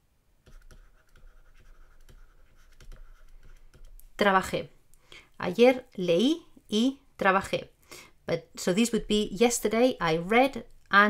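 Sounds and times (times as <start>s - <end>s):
stylus scratching on tablet: 0.4s - 4.4s.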